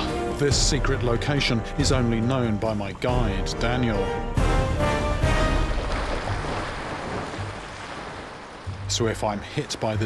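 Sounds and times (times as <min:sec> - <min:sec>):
water splashing and spraying: 0:00.0 - 0:10.0.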